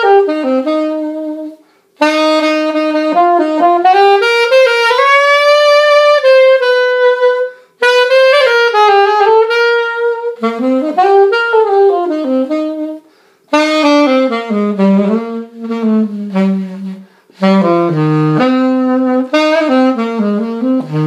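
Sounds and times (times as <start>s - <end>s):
alto saxophone melody: 0.0s - 21.0s.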